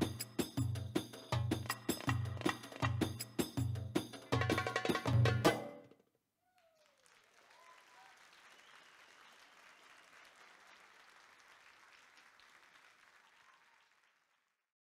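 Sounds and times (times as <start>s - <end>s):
faint audience applause: 6.5s - 14.7s.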